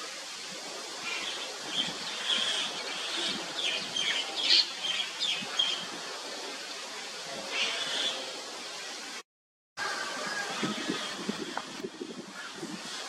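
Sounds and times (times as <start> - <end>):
outdoor background hiss: 0.0 - 9.2, 9.8 - 13.0.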